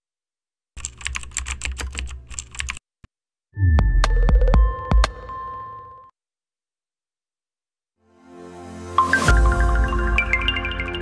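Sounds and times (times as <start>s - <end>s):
rapid keyboard clicks: 0.8s - 2.8s.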